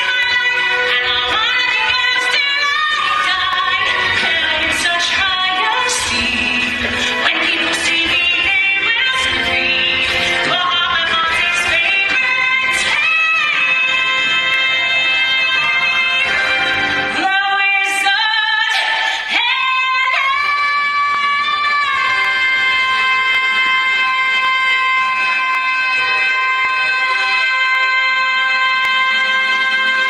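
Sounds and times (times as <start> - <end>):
theatre orchestra: 0.0 - 30.0
woman singing: 0.0 - 30.0.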